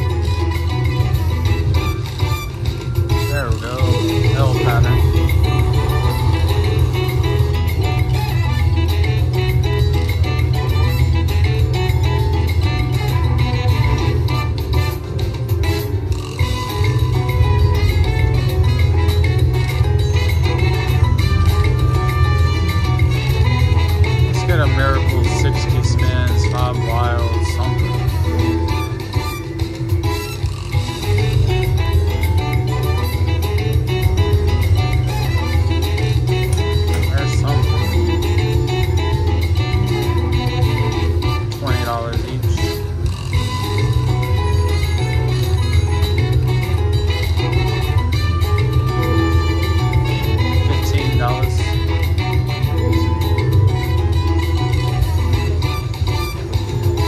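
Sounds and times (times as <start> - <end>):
repeating bass beat: 0.0 - 57.0
slot machine music: 0.0 - 57.0.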